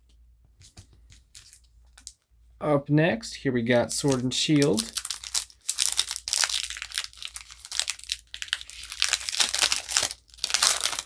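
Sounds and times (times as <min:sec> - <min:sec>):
foil wrapper crinkling and tearing: 0:01.3 - 0:02.2, 0:04.0 - 0:11.0.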